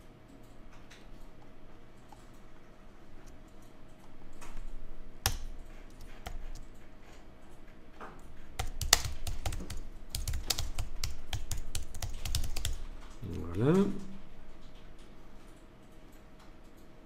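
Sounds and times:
keyboard typing: 0.3 - 16.9.

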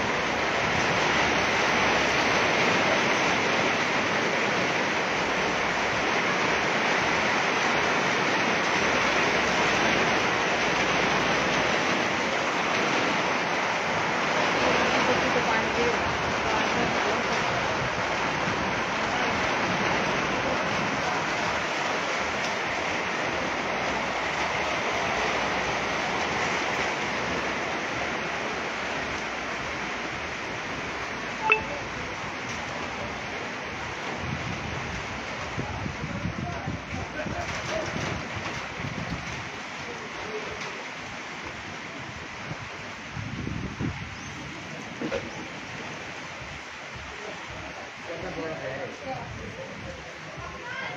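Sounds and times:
rain and hail on metal roofs: 0.0 - 50.9.

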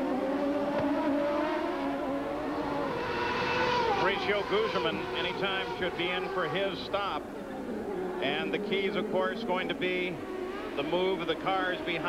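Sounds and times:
race car engines at speed: 0.0 - 12.0.

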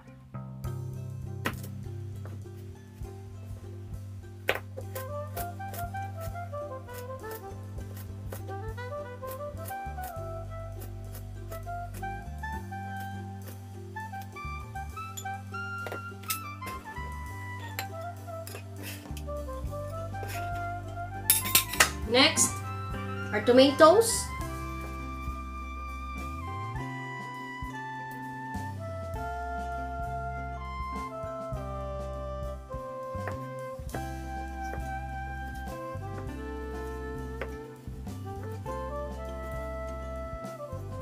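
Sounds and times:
instrumental background music: 0.0 - 41.0.

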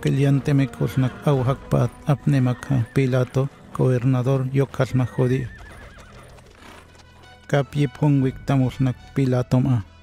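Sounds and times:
horse whinnying: 1.9 - 7.0
hooves on stone paving: 4.8 - 9.4.

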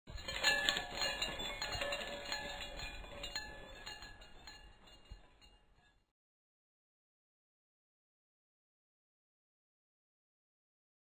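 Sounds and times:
chiming bell-like notes: 0.1 - 6.0
light metallic clinks: 0.1 - 6.1.

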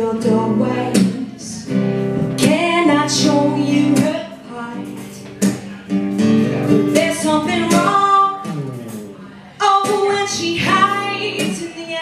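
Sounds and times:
woman singing: 0.0 - 5.3, 6.8 - 8.5, 9.5 - 12.0
strummed acoustic guitar: 0.0 - 12.0.

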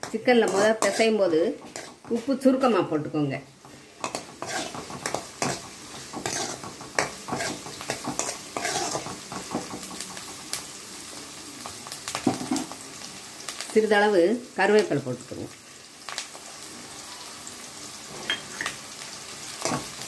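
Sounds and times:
food sizzling in oil: 0.0 - 20.0
ladle scraping metal pan: 0.4 - 2.0, 4.0 - 5.6, 6.2 - 9.1.

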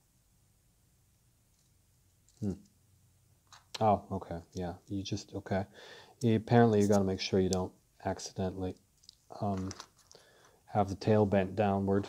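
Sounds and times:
plastic parts clicking together: 9.0 - 10.2.

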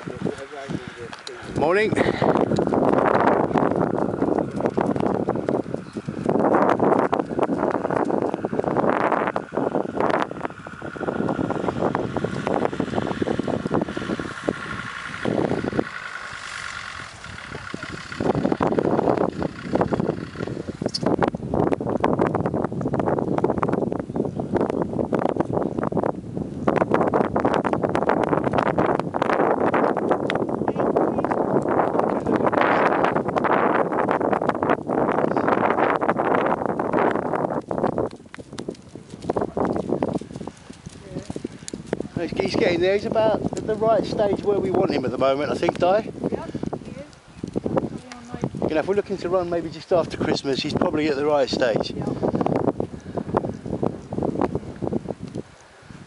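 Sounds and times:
vehicle running: 0.0 - 56.0
wind buffeting microphone: 0.0 - 56.0.

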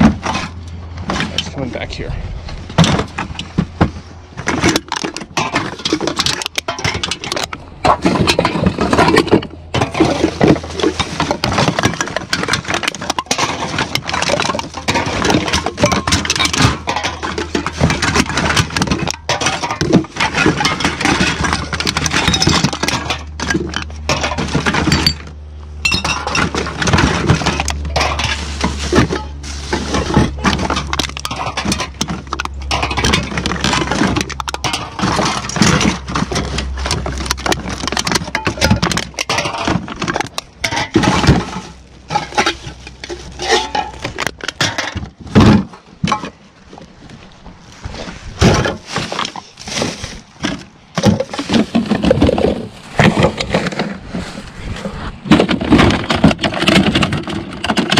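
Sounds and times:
low rumble: 0.0 - 5.9
cans and bottles clinking: 2.8 - 46.5, 48.4 - 54.0, 55.3 - 57.9.

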